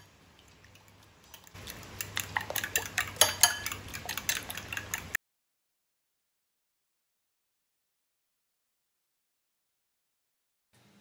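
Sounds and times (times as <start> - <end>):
spoon clinking against bowl: 1.3 - 5.1.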